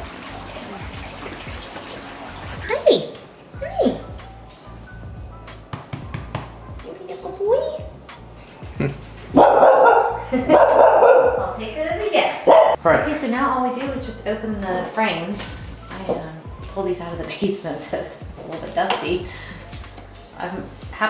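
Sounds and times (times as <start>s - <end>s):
dog barking: 9.3s - 11.4s, 12.4s - 12.8s.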